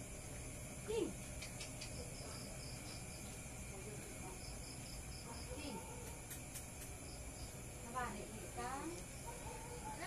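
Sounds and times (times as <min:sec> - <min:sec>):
faint insect chirping: 0:00.0 - 0:10.0
low background hum: 0:00.0 - 0:10.0.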